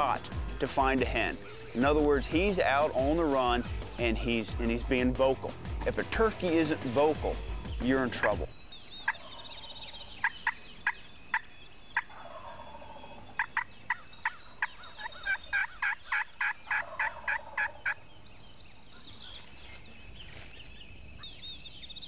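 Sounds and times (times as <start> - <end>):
wild turkey yelping: 0.0 - 4.0, 9.0 - 18.1.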